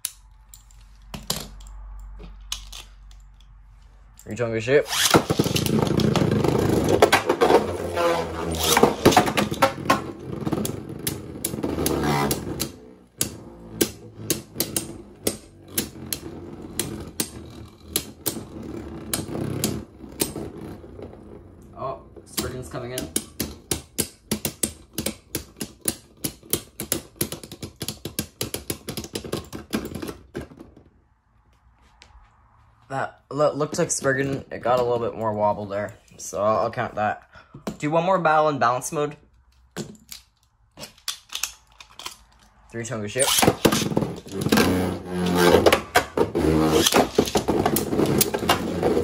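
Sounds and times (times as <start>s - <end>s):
spinning tops whirring scrape: 4.8s - 21.1s, 43.2s - 49.0s.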